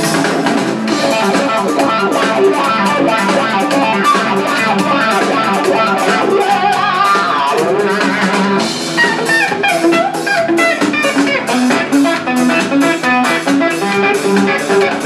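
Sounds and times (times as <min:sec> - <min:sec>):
electric guitar melody: 0:00.0 - 0:15.0.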